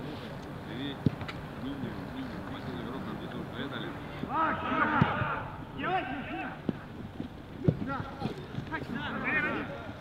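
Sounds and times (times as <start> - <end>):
players shouting: 4.2 - 6.7, 8.7 - 10.0
football being kicked: 7.6 - 8.7.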